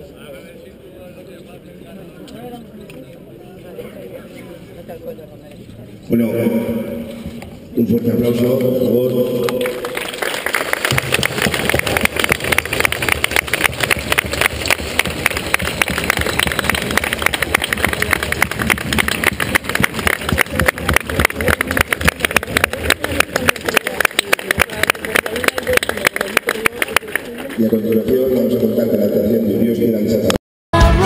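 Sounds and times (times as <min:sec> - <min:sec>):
crowd applauding: 0:09.2 - 0:28.6.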